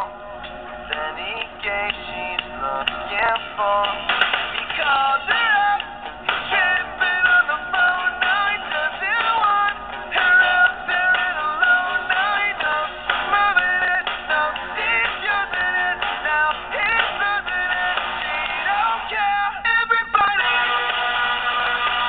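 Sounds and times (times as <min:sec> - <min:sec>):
backing music: 0:00.0 - 0:22.0
person singing lead vocal: 0:00.9 - 0:21.2.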